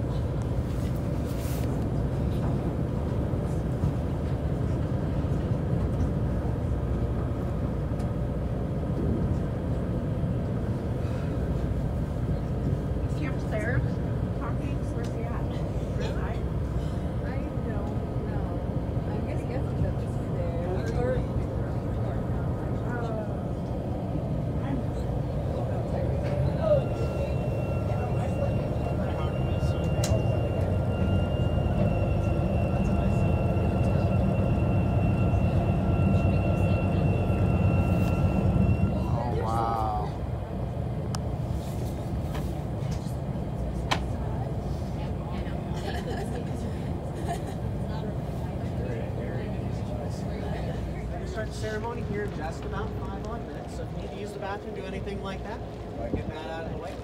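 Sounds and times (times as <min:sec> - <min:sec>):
boat engine rumbling: 0:00.0 - 0:57.0
people talking: 0:12.2 - 0:23.6, 0:24.5 - 0:40.2, 0:42.3 - 0:57.0.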